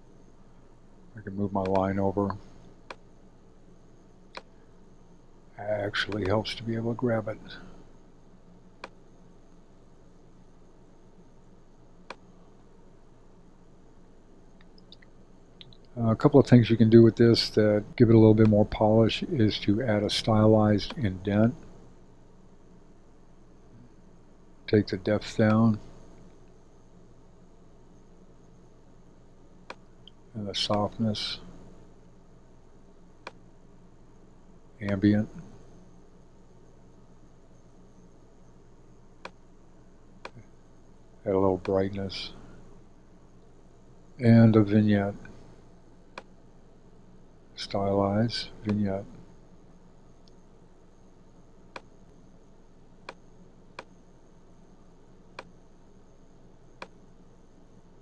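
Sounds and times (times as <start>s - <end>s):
low hum with hiss: 0.0s - 58.0s.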